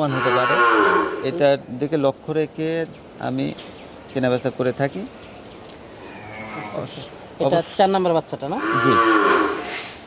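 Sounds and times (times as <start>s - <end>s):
cattle mooing: 0.0s - 1.4s, 6.0s - 7.0s, 8.6s - 9.7s.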